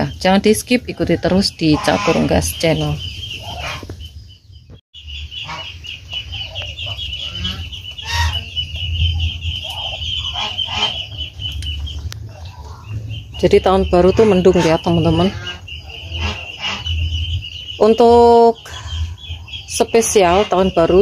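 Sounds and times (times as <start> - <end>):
poultry rapidly pulsing call: 1.2 - 4.0, 5.2 - 21.0.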